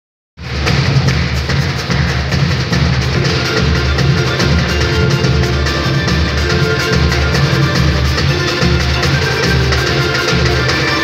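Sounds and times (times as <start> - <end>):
bass drum: 0.4 - 11.0
samba band playing: 0.4 - 11.0
snare drum: 0.4 - 11.0.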